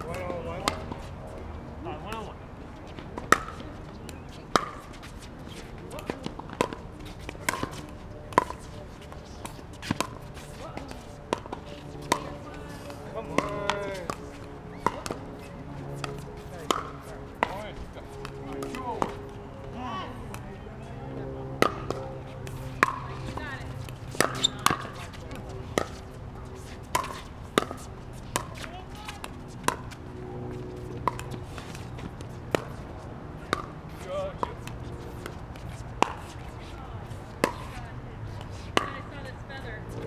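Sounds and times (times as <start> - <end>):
paddles hitting plastic ball: 13.3 - 15.4.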